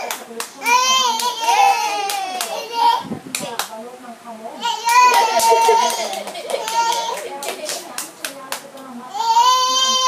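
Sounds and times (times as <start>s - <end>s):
hand claps: 0.0s - 0.6s, 2.0s - 2.6s, 4.9s - 8.9s
child squealing: 5.1s - 7.2s.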